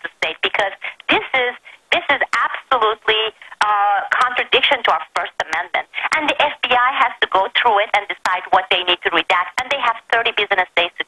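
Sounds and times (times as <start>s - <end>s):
person talking over telephone: 0.0s - 11.0s.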